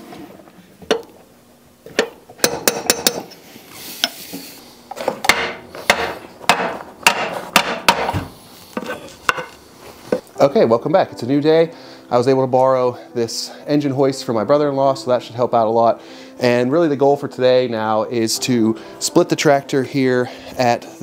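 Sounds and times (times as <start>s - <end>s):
hammer striking metal bearing: 2.0s - 3.3s, 5.3s - 8.1s.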